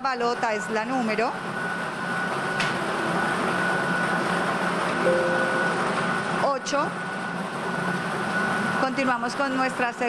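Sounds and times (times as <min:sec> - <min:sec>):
lottery machine whirring: 0:04.9 - 0:06.4
thin high hum: 0:05.1 - 0:06.4.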